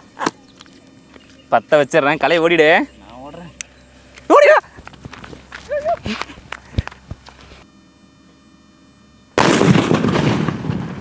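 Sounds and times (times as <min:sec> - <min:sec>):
firecracker blast: 0:09.4 - 0:11.0.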